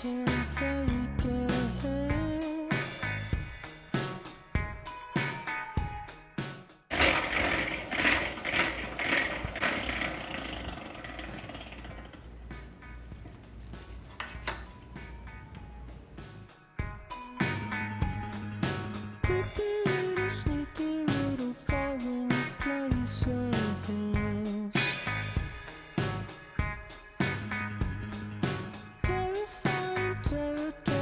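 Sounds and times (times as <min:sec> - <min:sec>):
background music: 0:00.0 - 0:31.0
hand-cranked extractor whirring: 0:06.9 - 0:13.1.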